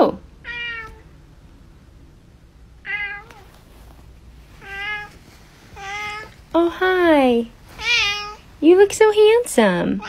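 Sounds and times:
cat meowing: 0.4 - 1.1, 2.8 - 3.6, 4.6 - 5.2, 5.8 - 6.4, 7.8 - 8.4.

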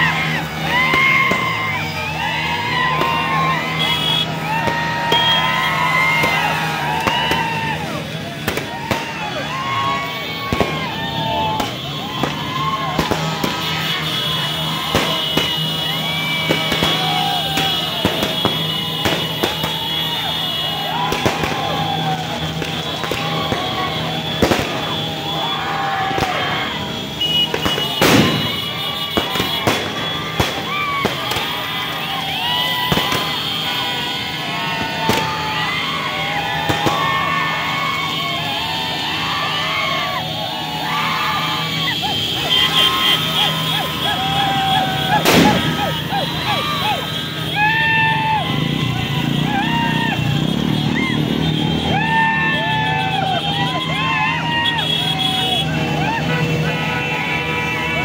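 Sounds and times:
crowd shouting and cheering: 0.0 - 58.0
firecrackers banging: 0.0 - 58.0.

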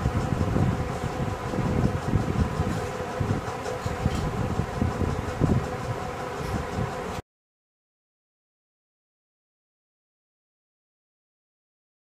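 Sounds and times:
steady background hum: 0.0 - 7.2.

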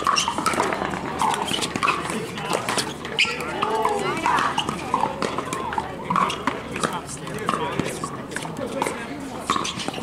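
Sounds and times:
paddles hitting plastic ball: 0.0 - 10.0
voices talking: 0.0 - 10.0.

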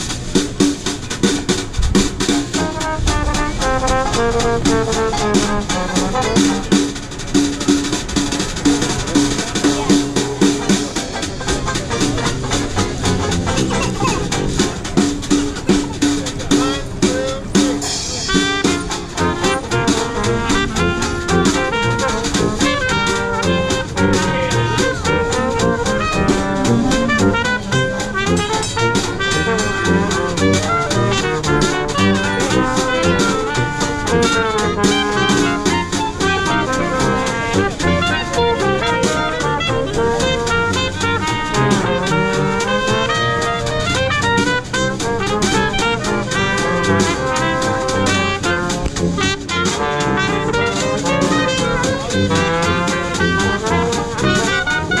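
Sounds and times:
dixieland band playing: 0.0 - 55.0.

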